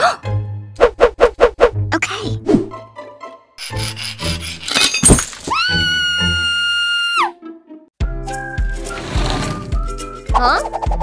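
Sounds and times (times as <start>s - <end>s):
light background music: 0.0s - 6.6s, 7.3s - 11.0s
rough saw strokes: 3.6s - 4.7s.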